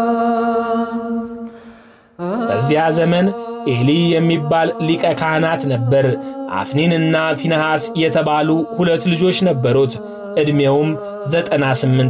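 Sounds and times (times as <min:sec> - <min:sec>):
man chanting: 0:02.2 - 0:12.0.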